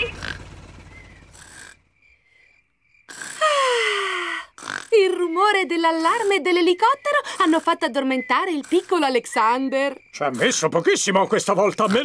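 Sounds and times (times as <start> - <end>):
cartoon helicopter rumble: 0.0 - 2.0
faint high chirps: 5.2 - 12.0.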